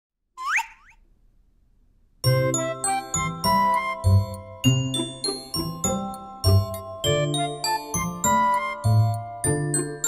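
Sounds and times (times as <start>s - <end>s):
tinkly children's jingle: 2.2s - 10.0s.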